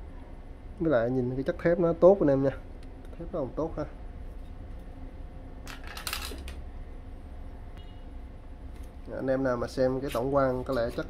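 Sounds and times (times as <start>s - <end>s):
faint metallic ring: 7.8s - 8.1s.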